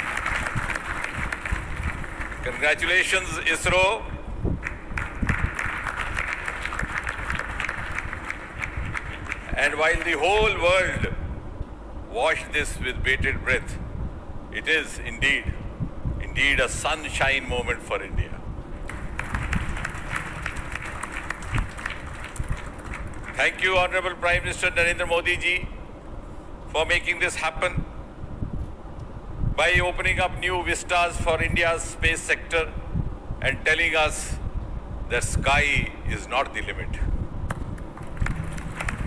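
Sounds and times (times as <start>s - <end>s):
audience applauding: 0.0s - 2.4s, 4.7s - 9.6s, 18.9s - 23.4s, 38.0s - 39.0s.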